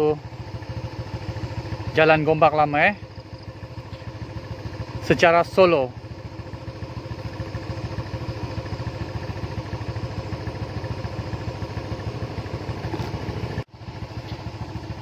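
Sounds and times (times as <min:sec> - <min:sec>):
motorcycle engine idling: 0:00.0 - 0:15.0.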